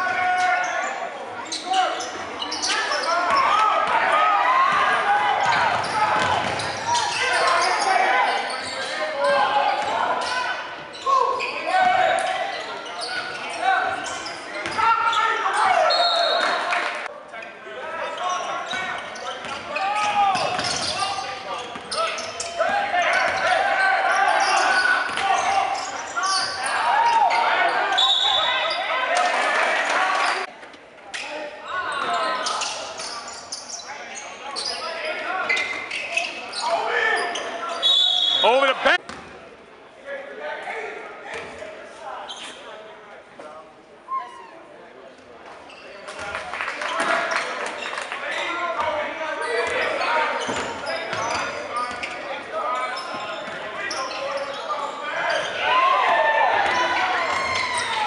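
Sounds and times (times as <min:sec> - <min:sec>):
people shouting and talking: 0:00.0 - 0:58.0
referee whistle blasts: 0:37.8 - 0:38.6.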